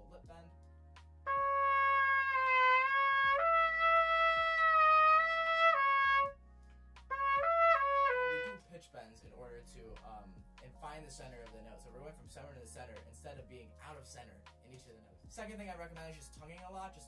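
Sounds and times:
trumpet playing slurred notes: 1.3s - 6.4s, 7.1s - 8.6s.

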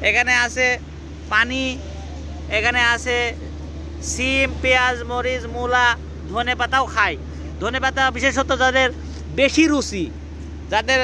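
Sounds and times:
person speaking: 0.0s - 11.0s
steady low hum: 0.0s - 11.0s.

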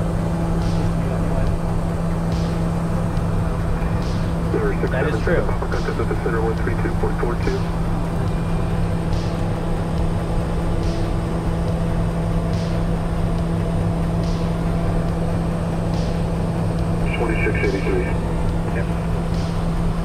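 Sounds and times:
turboprop cockpit drone: 0.0s - 20.0s.

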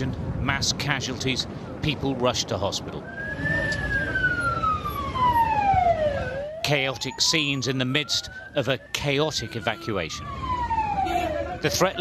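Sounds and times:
emergency vehicle siren wailing: 3.0s - 12.0s.

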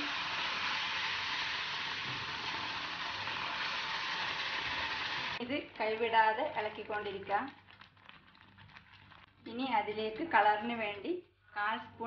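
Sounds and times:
milk sizzling in hot pan: 0.0s - 9.2s.

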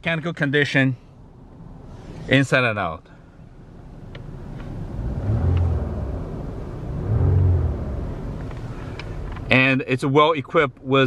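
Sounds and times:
car engine revving: 4.3s - 9.5s.

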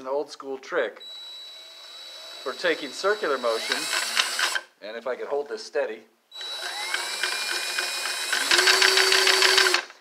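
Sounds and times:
cordless drill motor whining: 1.0s - 4.6s, 6.3s - 9.9s.

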